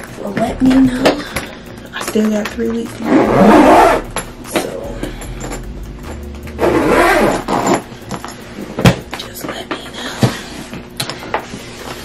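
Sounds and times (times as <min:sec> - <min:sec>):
suitcase scraping and rumbling: 0:03.0 - 0:08.4.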